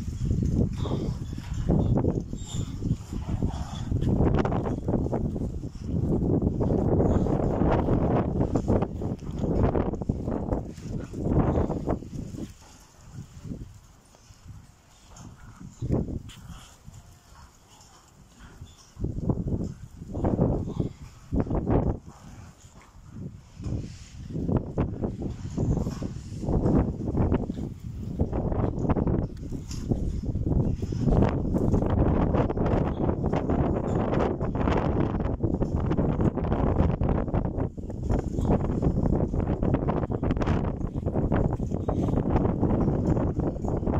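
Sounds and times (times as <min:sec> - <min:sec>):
wind buffeting microphone: 0:00.0 - 0:43.9.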